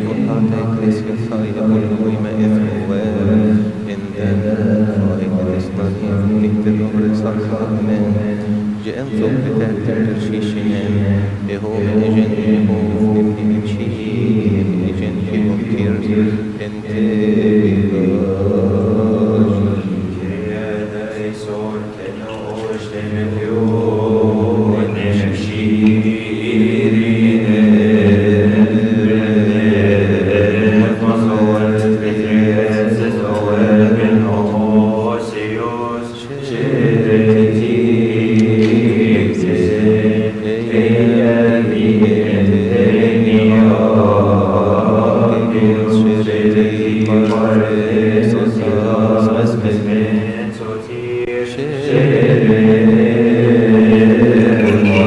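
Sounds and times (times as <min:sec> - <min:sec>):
voices chanting a hymn in unison: 0:00.0 - 0:55.0.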